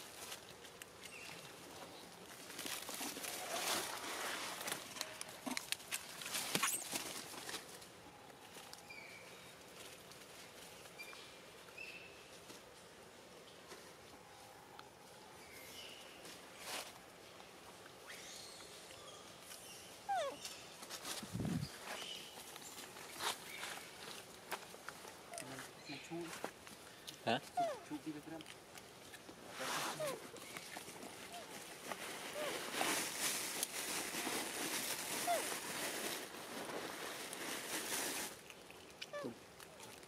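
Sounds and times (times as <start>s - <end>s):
dry leaves and twigs rustling: 0.0s - 12.9s, 17.8s - 40.0s
monkey squeak: 27.6s - 27.9s.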